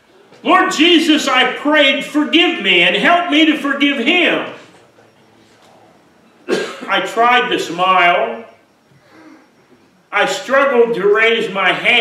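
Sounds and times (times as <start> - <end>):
man speaking: 0.4 - 4.8, 6.9 - 8.6, 10.1 - 12.0
man clearing throat: 6.4 - 6.9.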